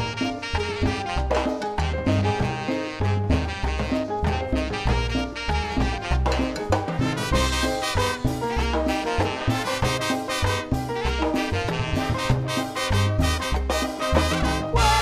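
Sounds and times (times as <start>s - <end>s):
percussion: 0.0s - 15.0s
piano: 0.0s - 15.0s
trumpets and trombones: 0.0s - 15.0s
upright bass: 0.0s - 15.0s.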